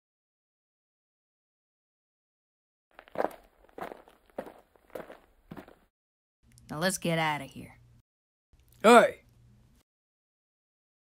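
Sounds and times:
footsteps: 2.9s - 5.9s.

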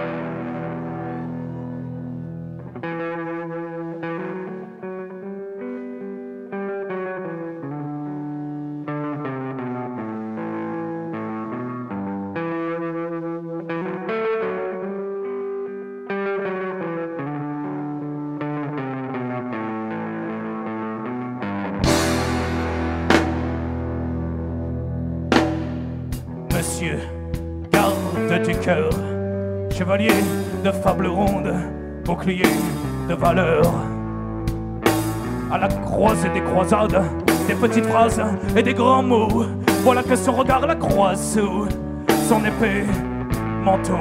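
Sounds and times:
distorted electric guitar: 0.0s - 44.0s.

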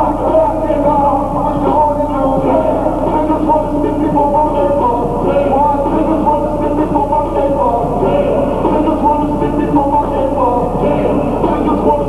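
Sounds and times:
hip-hop music from sound system: 0.0s - 12.0s.

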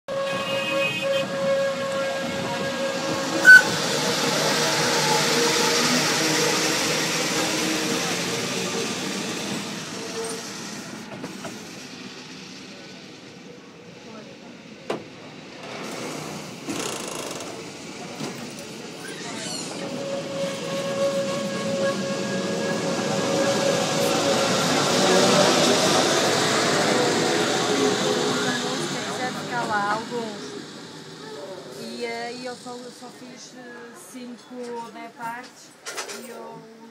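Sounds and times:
train motor whine: 0.1s - 13.1s, 15.6s - 33.3s
train car rolling rumble: 0.1s - 36.9s.

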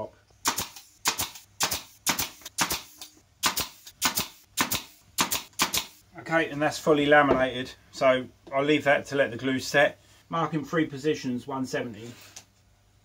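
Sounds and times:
pin nailer firing clicks: 0.4s - 6.0s.

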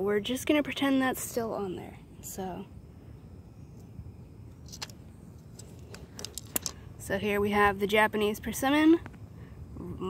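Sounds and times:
outdoor background rumble: 0.0s - 10.0s
objects tapping on concrete: 5.6s - 6.8s.

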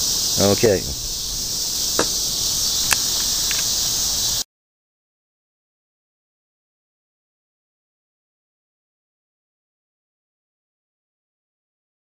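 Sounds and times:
crickets chirping: 0.0s - 4.4s
sharp clicks: 2.8s - 3.7s.

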